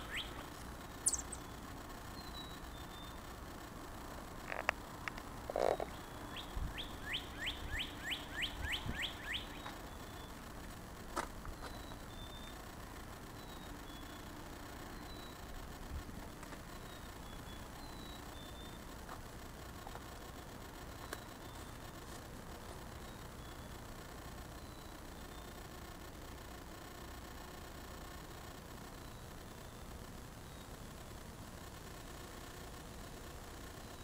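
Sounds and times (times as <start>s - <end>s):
bird singing whistled notes: 0.0s - 0.4s, 1.0s - 1.6s, 2.2s - 3.2s, 5.9s - 10.4s, 11.6s - 12.6s, 13.4s - 14.3s.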